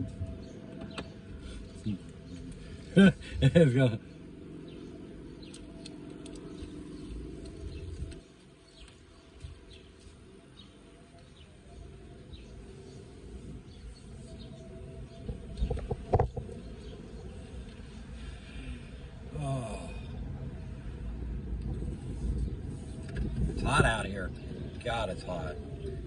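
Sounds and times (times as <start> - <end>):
car engine and road rumble: 0.0 - 26.0.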